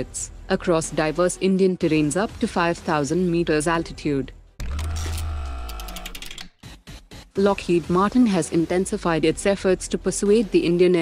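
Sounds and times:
rapid mechanical clicks: 4.6s - 6.5s.

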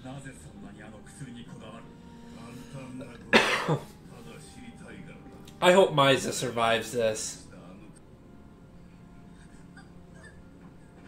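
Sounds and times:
man coughing: 3.3s - 4.0s.

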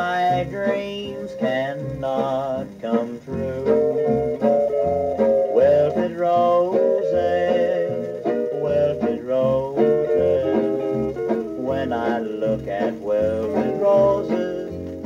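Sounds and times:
country string band on record: 0.0s - 15.0s.

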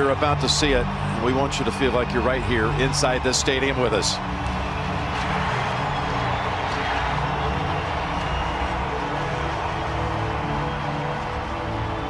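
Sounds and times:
music with low tones: 0.0s - 12.0s
stadium crowd cheering: 0.0s - 12.0s.

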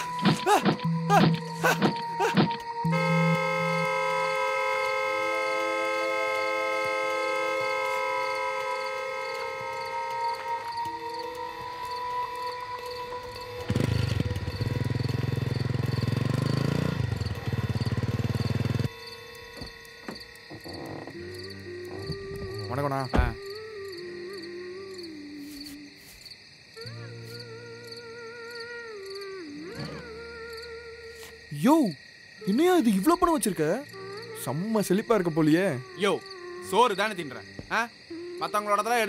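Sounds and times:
sustained synthesized chord: 2.6s - 20.4s.

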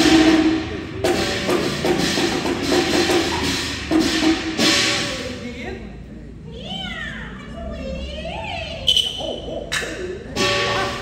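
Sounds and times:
sharp percussion strikes: 0.0s - 5.5s, 8.9s - 11.0s.

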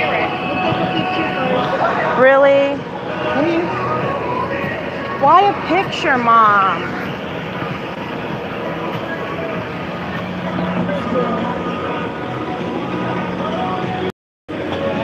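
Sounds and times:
faint voices: 0.0s - 15.0s.

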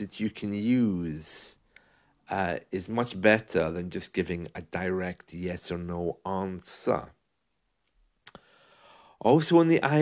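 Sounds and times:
faint in-breath: 1.7s - 2.2s, 8.4s - 9.2s.

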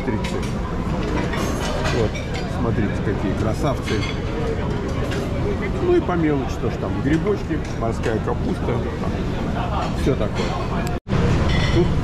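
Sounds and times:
restaurant background noise: 0.0s - 12.0s.

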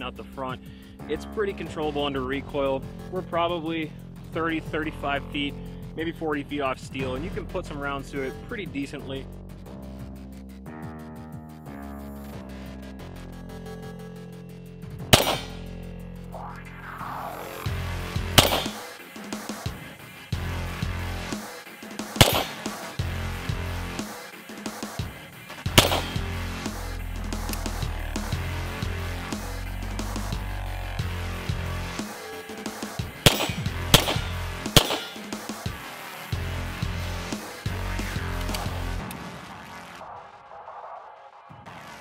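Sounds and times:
music with low beat: 6.8s - 39.2s
pistol shots: 15.2s - 15.7s, 18.4s - 18.9s, 22.2s - 23.0s, 25.7s - 26.4s, 33.2s - 35.4s.

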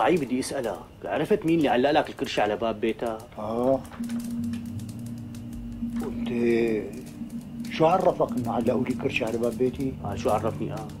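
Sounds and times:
faint irregular clicks: 0.0s - 11.0s
low held music note: 5.6s - 9.2s.

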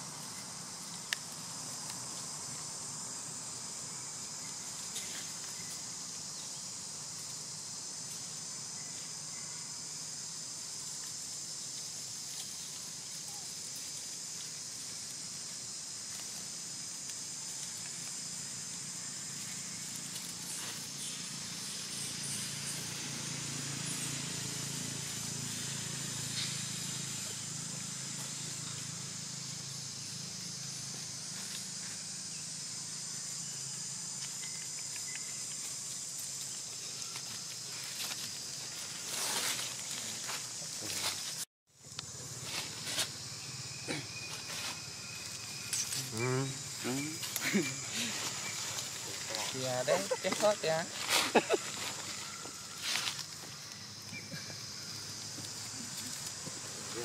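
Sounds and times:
insects droning: 0.0s - 57.0s
dry leaves rustling: 9.8s - 21.8s, 34.0s - 41.4s, 42.0s - 43.5s, 44.2s - 57.0s.

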